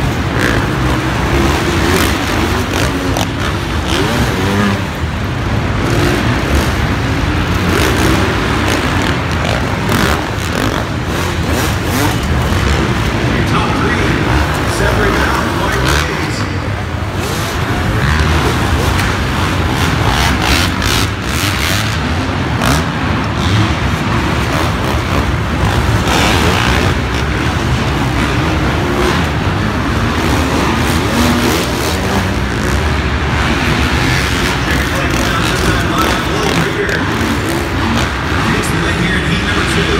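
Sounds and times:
motocross bikes racing: 0.0s - 39.9s
public address voice: 13.2s - 16.8s, 34.6s - 37.2s, 38.4s - 39.9s.

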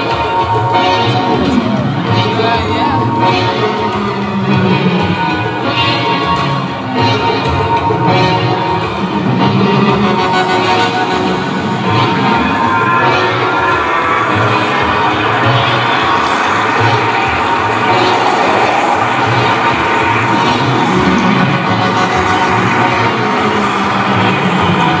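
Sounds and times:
crowd cheering: 0.0s - 25.0s
electronic music with pulsing beat: 0.0s - 25.0s.

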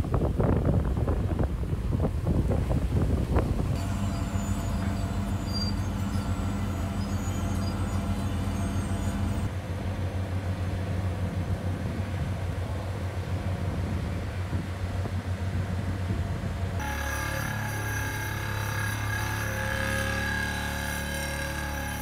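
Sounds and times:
diesel construction machinery rumbling: 0.0s - 22.0s
vibratory hammer humming: 3.4s - 9.5s, 16.8s - 22.0s.

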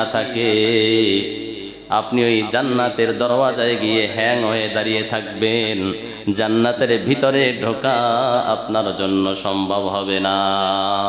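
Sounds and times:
man preaching in sing-song chant: 0.0s - 11.0s.

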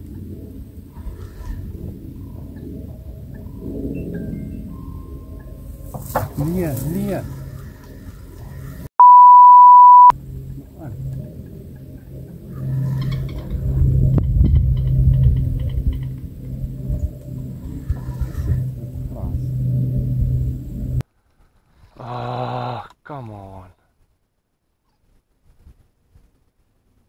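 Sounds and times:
low rumble: 0.0s - 8.9s, 9.7s - 21.0s
censor bleep: 9.0s - 10.1s.

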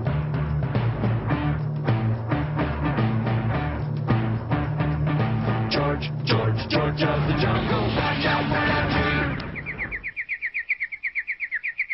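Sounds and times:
music: 0.0s - 9.7s
bird trill: 8.8s - 11.9s.

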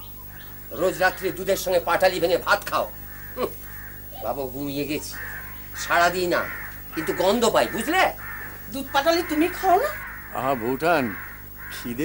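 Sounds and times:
bird calling: 0.0s - 12.0s
people talking: 5.8s - 12.0s.

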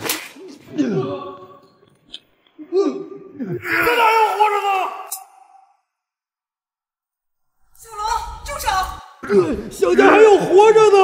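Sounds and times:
man's pained cry: 2.8s - 5.6s.

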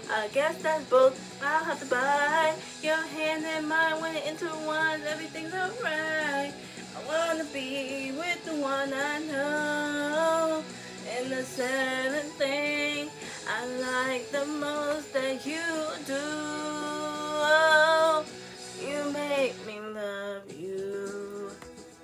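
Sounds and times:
woman singing into a microphone: 0.0s - 21.6s
pop backing track: 0.0s - 22.0s.

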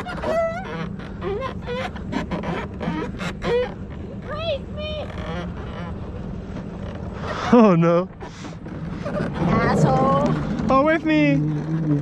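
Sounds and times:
cart wheels rolling on concrete: 0.0s - 12.0s.

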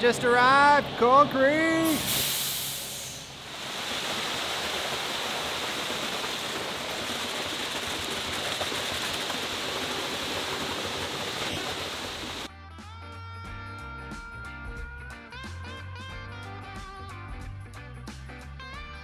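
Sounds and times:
concrete pouring down chute: 1.8s - 12.5s
guitar music: 12.7s - 19.0s.

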